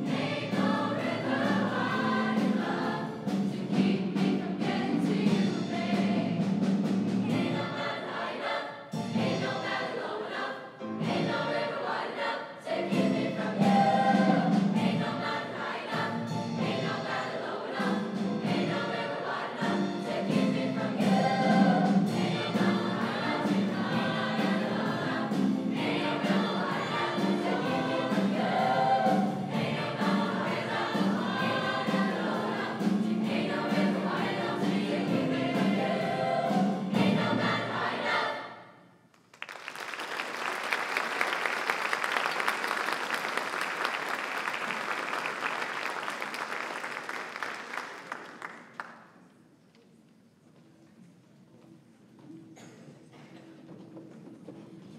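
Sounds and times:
choir singing in harmony: 0:00.0 - 0:38.9.

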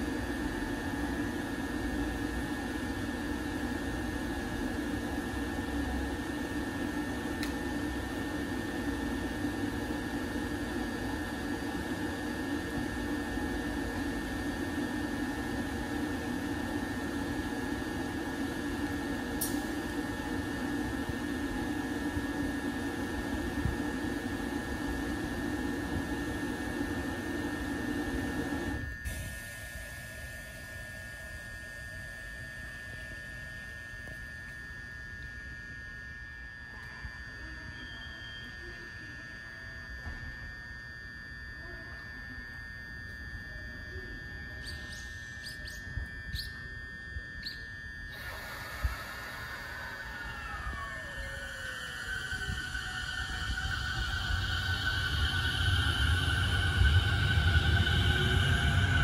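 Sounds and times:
cooling fan rushing: 0:00.0 - 0:38.4, 0:42.2 - 0:59.0
electric train electrical whine: 0:00.0 - 0:59.0.

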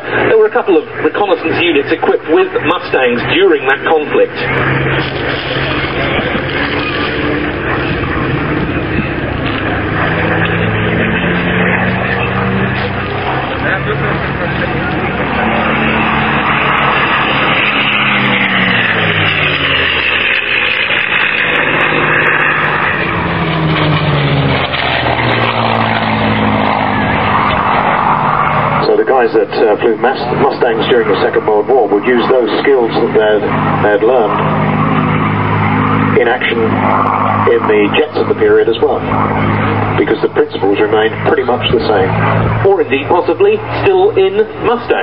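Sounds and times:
propeller plane engine flying past: 0:00.0 - 0:45.0.

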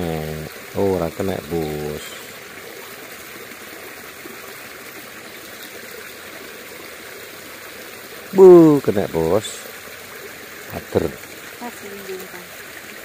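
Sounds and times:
creek water rushing: 0:00.0 - 0:13.0.

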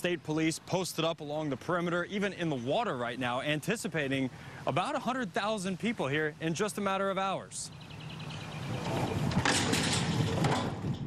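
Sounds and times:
steady outdoor rushing noise: 0:00.0 - 0:11.0.

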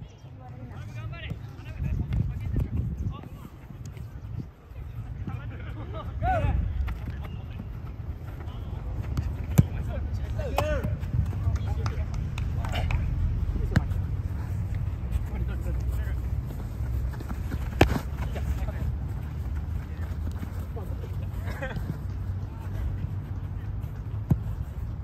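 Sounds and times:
ball kicked with thuds: 0:09.0 - 0:09.9, 0:17.1 - 0:18.2, 0:24.2 - 0:24.5.

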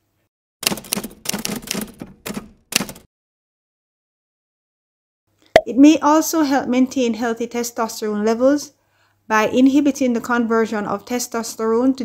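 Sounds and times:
rapid keyboard clicks: 0:00.6 - 0:03.1.

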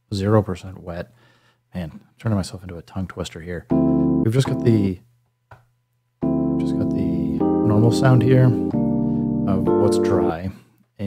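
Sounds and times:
keyboard chord: 0:03.7 - 0:05.0, 0:06.2 - 0:10.4.

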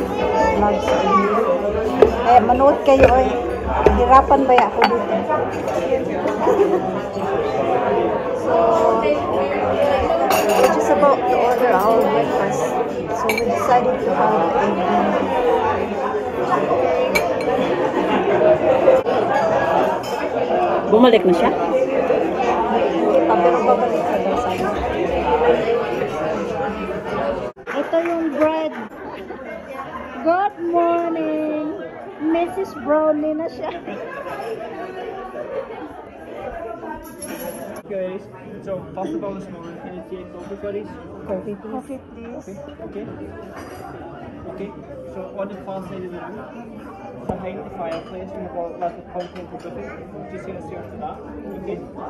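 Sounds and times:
diners chattering: 0:00.0 - 0:52.0
murmur of voices: 0:00.0 - 0:52.0
china cups clinking: 0:03.0 - 0:05.2.

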